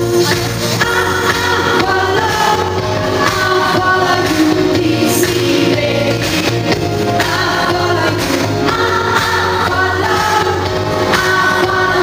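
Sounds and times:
loud backing music: 0.0s - 12.0s
woman singing into microphone: 0.0s - 12.0s.

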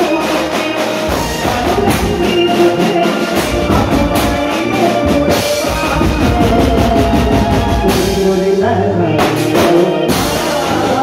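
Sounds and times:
drums playing fast beat: 0.0s - 11.0s.

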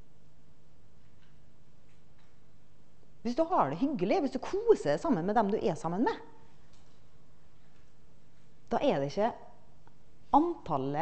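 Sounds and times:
room tone hum: 0.0s - 11.0s
woman speaking: 3.2s - 6.4s, 8.7s - 9.6s, 10.3s - 11.0s.

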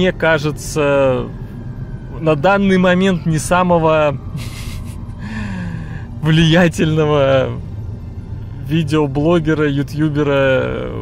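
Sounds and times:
low rumble in car cabin: 0.0s - 11.0s.

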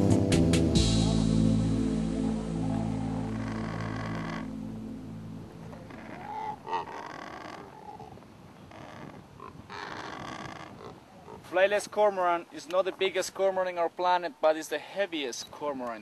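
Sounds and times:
background music: 0.0s - 5.8s
cormorant guttural calls: 2.1s - 11.6s.

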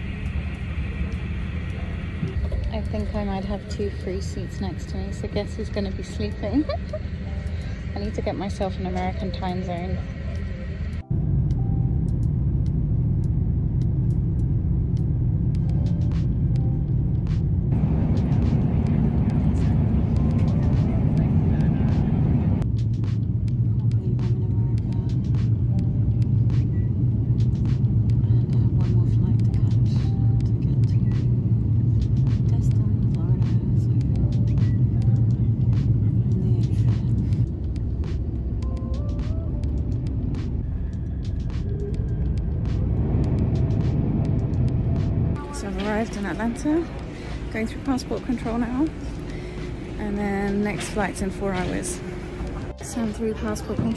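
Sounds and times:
jet airliner cabin rumble: 0.0s - 53.9s.

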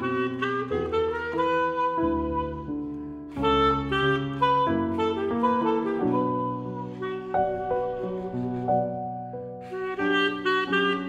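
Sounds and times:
clarinet: 0.0s - 11.0s
digital piano: 0.0s - 11.0s
tenor saxophone: 0.0s - 11.0s.

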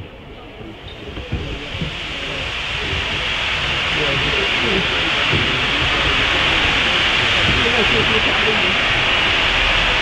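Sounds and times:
steam locomotive hissing: 0.1s - 10.0s.

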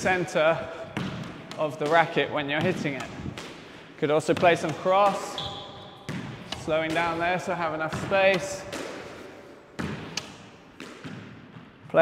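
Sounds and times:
squash ball knocking with echo: 0.0s - 12.0s.

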